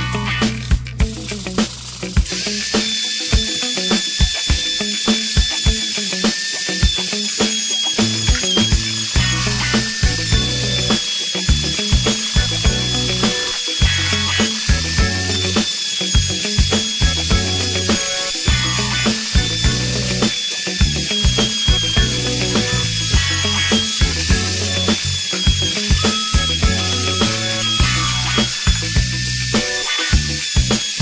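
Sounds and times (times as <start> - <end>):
background music with beat: 0.0 - 31.0
wood router high whine: 2.2 - 31.0.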